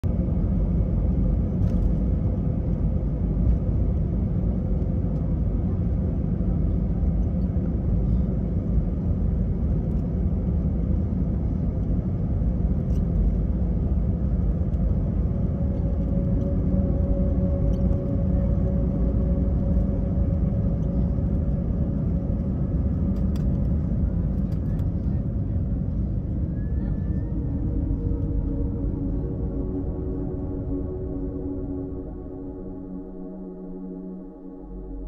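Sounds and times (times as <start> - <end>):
faint steady hum: 0.0 - 35.0
jet engines low rumble in cabin: 0.0 - 35.0.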